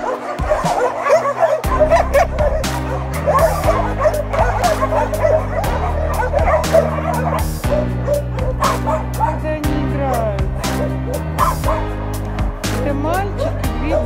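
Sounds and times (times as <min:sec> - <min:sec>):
dogs barking and yelping: 0:00.0 - 0:12.0, 0:12.8 - 0:14.0
background music: 0:00.0 - 0:14.0.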